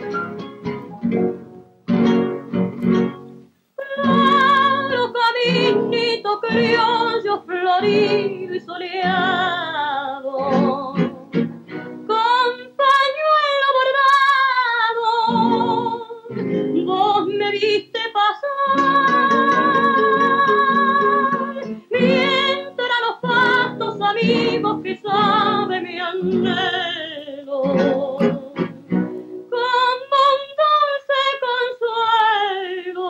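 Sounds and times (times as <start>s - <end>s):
acoustic guitar: 0.0s - 33.0s
woman singing with vibrato: 3.8s - 11.4s, 12.1s - 33.0s.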